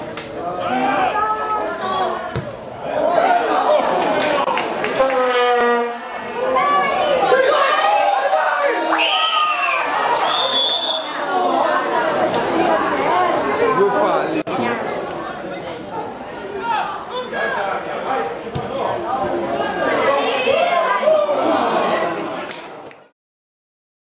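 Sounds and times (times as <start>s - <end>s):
spectators chattering and shouting: 0.0s - 23.1s
high whistle-like tone: 10.2s - 11.1s.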